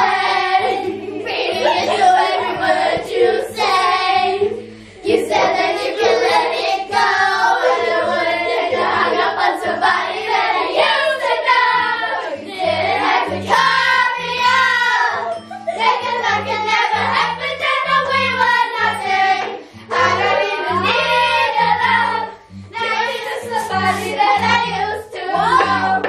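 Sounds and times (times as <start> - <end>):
children singing together: 0.0 - 26.0
musical accompaniment with bass: 0.0 - 26.0.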